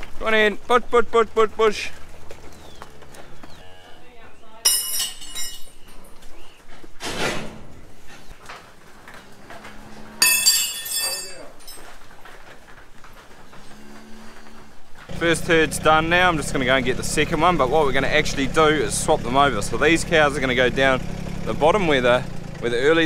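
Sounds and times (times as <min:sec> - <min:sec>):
metal railings and gates clanging: 0:01.2 - 0:23.0.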